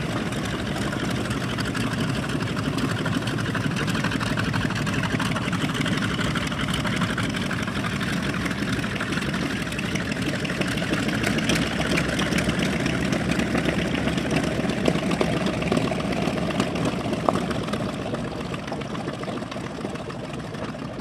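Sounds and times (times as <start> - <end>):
twin radial aircraft engines idling: 0.0 - 21.0.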